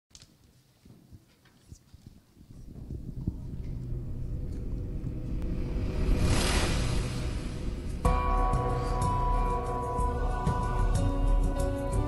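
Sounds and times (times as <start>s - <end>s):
low room rumble: 2.5s - 9.4s.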